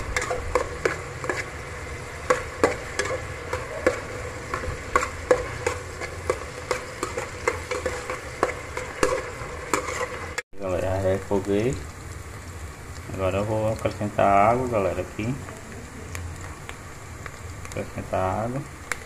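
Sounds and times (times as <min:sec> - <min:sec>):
metal spoon scraping a pot: 0:00.0 - 0:10.4
faint frying sizzle: 0:00.0 - 0:19.0.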